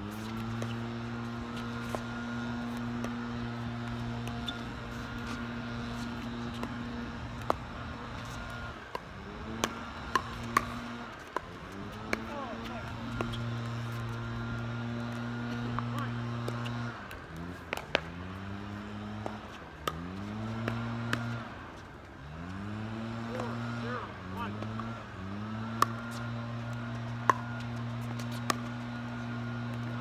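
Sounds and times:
engine revving: 0.0s - 30.0s.

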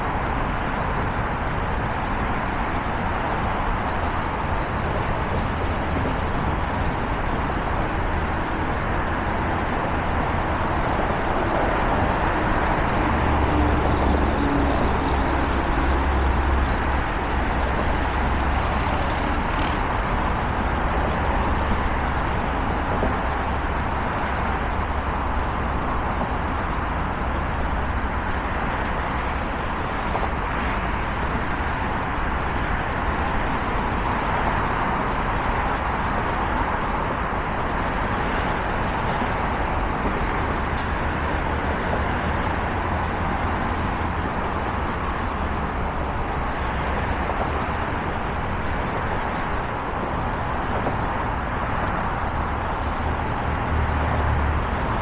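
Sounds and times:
dense freeway traffic: 0.0s - 55.0s.

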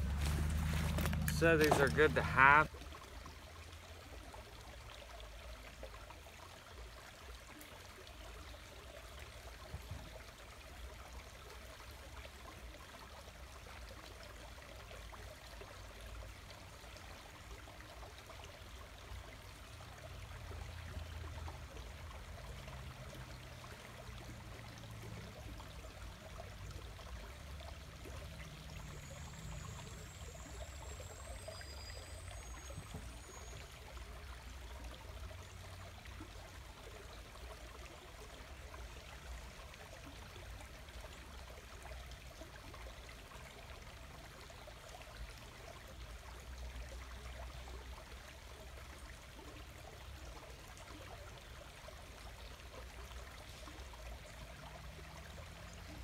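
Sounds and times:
creek trickling: 0.0s - 56.0s.

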